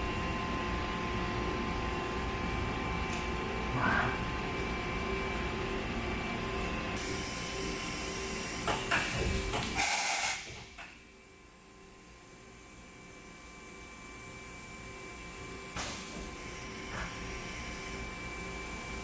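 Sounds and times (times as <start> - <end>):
machining center humming: 0.0 - 9.8
loud burst of hissy noise: 9.8 - 10.5.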